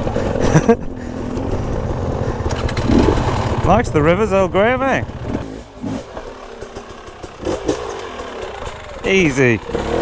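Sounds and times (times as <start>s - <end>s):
dirt bike engine running: 0.0s - 10.0s.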